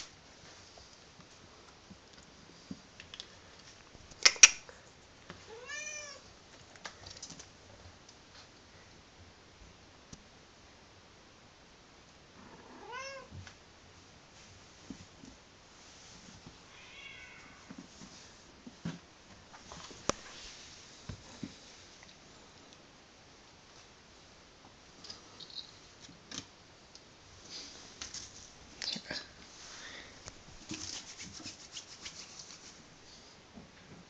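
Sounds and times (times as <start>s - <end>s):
kitten meowing: 5.5s - 6.2s.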